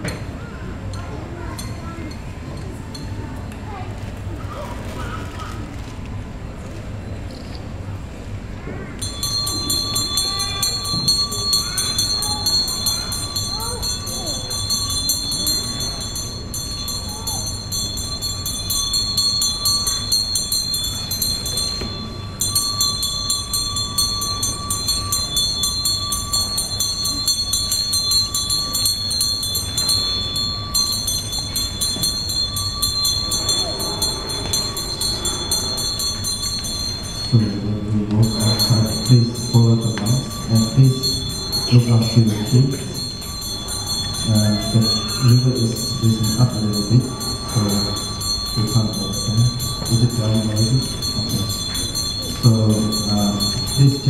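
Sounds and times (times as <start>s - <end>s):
quiet voices of onlookers: 0.1s - 7.3s, 8.6s - 36.1s
hand bell ringing: 9.0s - 54.0s.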